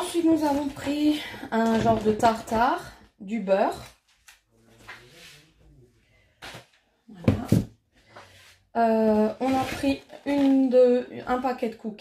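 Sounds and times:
plastic tubs clicking and knocking: 0:00.1 - 0:02.8.

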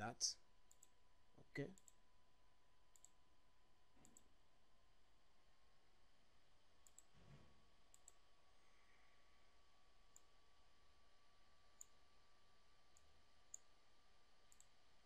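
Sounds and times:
computer mouse clicks: 0:00.7 - 0:01.0, 0:02.9 - 0:03.2, 0:04.0 - 0:04.3, 0:06.8 - 0:07.2, 0:07.9 - 0:08.2, 0:11.8 - 0:12.0, 0:12.9 - 0:13.7, 0:14.5 - 0:14.8.

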